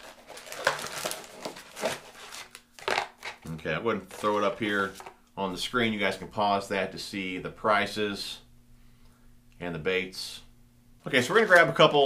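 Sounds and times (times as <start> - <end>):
cardboard and paper rustling: 0.0 - 3.4, 4.0 - 5.2, 11.2 - 12.0.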